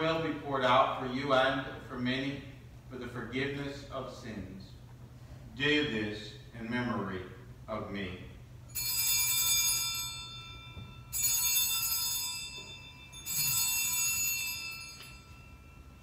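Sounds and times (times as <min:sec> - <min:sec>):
altar bells jangling: 0:08.7 - 0:16.0.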